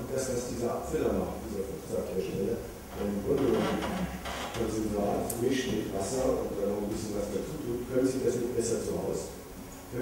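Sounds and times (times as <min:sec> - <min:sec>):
man lecturing: 0:00.0 - 0:10.0.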